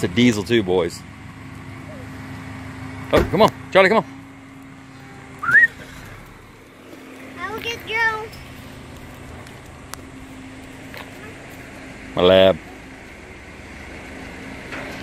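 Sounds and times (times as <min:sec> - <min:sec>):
high-pitched wavering call: 0:05.0 - 0:05.8
short upward whistle: 0:05.4 - 0:05.8.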